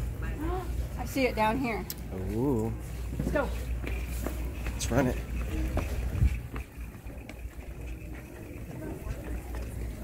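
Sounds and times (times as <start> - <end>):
faint voices: 0.0 - 10.0
shopping cart wheels rumbling: 2.4 - 10.0
cart rattles and clicks: 3.3 - 10.0.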